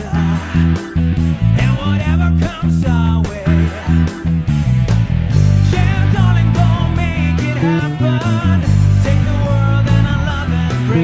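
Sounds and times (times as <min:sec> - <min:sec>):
clean electric bass run: 0:00.0 - 0:11.0
rock band backing track: 0:00.0 - 0:11.0.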